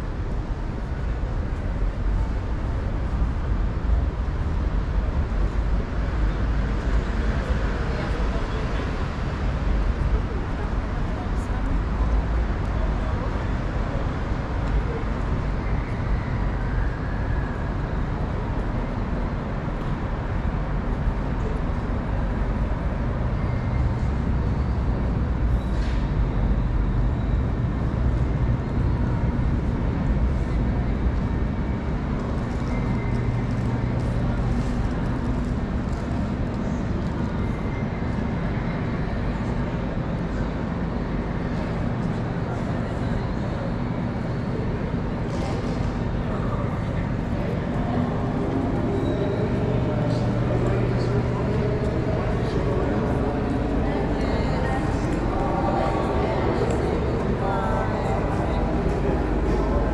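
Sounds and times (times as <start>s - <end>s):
traffic rumble: 0.0s - 59.9s
voices of passers-by: 1.6s - 59.9s.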